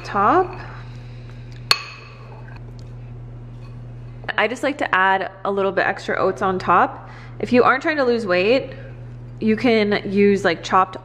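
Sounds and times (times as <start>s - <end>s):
low steady hum: 0.0s - 11.0s
spoon clinking against ramekin: 1.7s - 2.2s.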